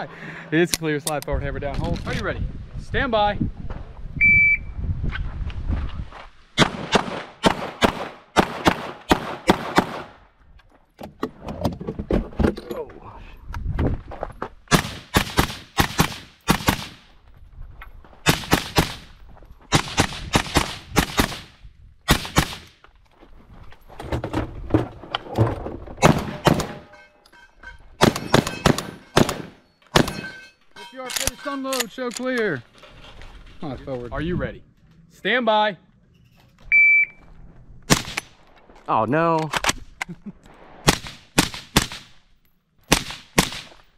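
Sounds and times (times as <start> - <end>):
shotgun shots: 6.6 - 10.2, 14.7 - 17.1, 18.2 - 19.1, 19.7 - 21.5, 22.1 - 22.7, 26.0 - 26.9, 28.0 - 30.3, 37.9 - 38.4, 40.8 - 42.2, 42.9 - 43.8.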